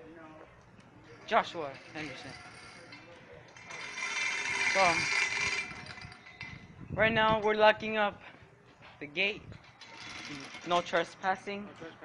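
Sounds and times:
metal gate scraping shut: 1.7s - 6.7s, 9.6s - 11.1s.

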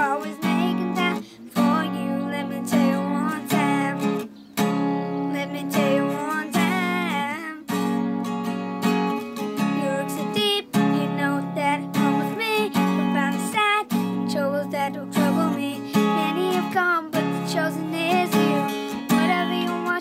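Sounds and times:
boy singing: 0.0s - 7.8s, 9.6s - 20.0s
acoustic guitar strumming: 0.0s - 20.0s.

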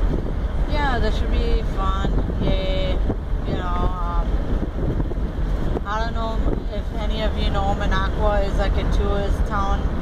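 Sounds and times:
road and wind rumble in car: 0.0s - 10.0s
wind buffeting microphone: 0.0s - 10.0s.

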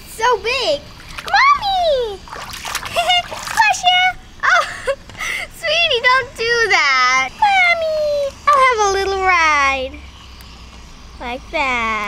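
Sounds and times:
hand splashing water: 1.0s - 1.5s, 2.2s - 3.8s.

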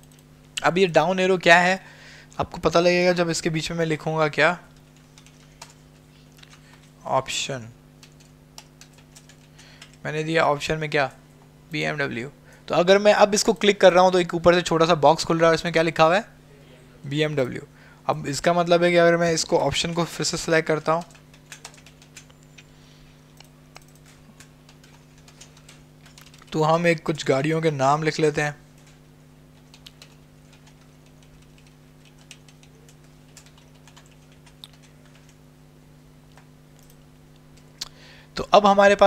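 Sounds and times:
computer keyboard keystrokes: 0.0s - 0.2s, 4.8s - 5.8s, 6.4s - 6.9s, 8.0s - 10.0s, 21.0s - 22.7s, 23.4s - 26.6s, 29.6s - 35.4s, 36.3s - 37.0s
steady low hum: 0.0s - 39.0s.

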